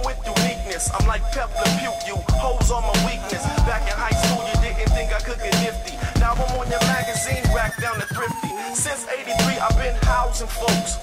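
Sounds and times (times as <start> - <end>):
hip-hop beat with kick drum: 0.0 - 11.0
person rapping: 0.0 - 11.0.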